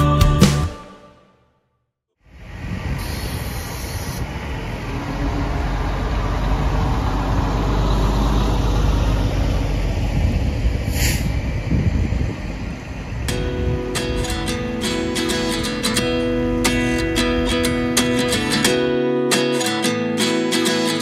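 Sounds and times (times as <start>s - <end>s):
air hiss burst: 2.9s - 4.3s, 10.9s - 11.4s
tyres hissing on wet pavement: 3.0s - 4.8s
motorhome engine rumbling: 3.5s - 18.7s.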